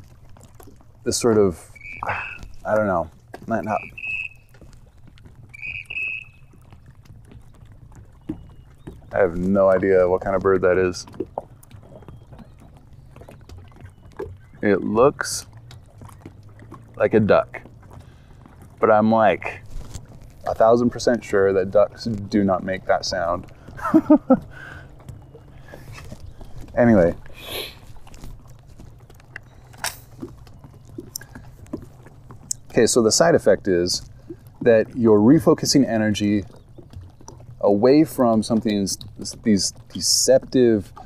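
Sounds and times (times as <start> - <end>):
waterbird calls: 0.0 - 41.0
wind rumbling on microphone: 0.0 - 41.0.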